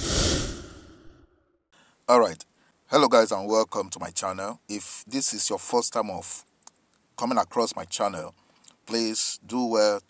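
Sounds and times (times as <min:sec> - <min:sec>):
breathy whoosh: 0:00.0 - 0:01.5.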